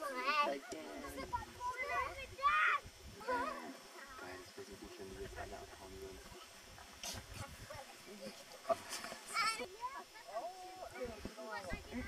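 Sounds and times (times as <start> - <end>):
people talking and calling: 0.0 - 12.0.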